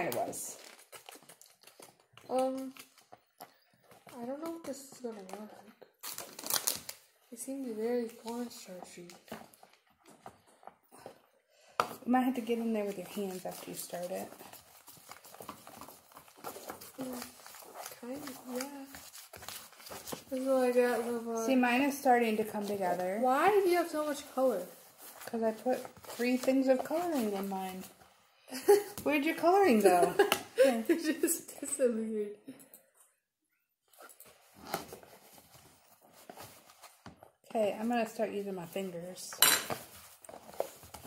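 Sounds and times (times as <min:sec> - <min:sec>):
play dough being mixed: 0:00.0 - 0:31.0.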